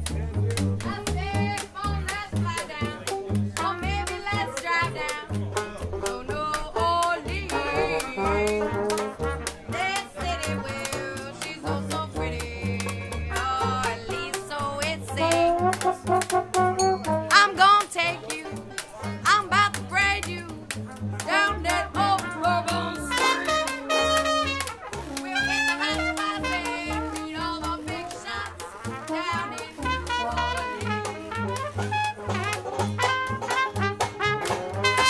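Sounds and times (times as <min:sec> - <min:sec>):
percussive clicks: 0:00.0 - 0:35.0
pulsing bass line: 0:00.0 - 0:35.0
trombone: 0:00.0 - 0:35.0
woman singing: 0:00.8 - 0:03.0, 0:03.6 - 0:05.3, 0:06.0 - 0:08.8, 0:09.7 - 0:15.7, 0:17.3 - 0:18.6, 0:19.2 - 0:20.6, 0:21.2 - 0:23.9, 0:25.1 - 0:31.6.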